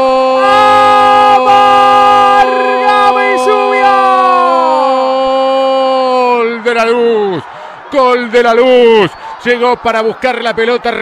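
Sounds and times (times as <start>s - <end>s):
commentator's long goal cry: 0.0s - 6.4s.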